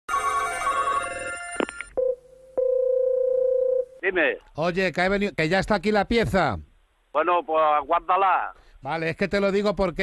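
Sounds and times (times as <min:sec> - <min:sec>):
electronic telephone ringing: 0:00.1 - 0:03.9
steady telephone line tone: 0:00.1 - 0:04.0.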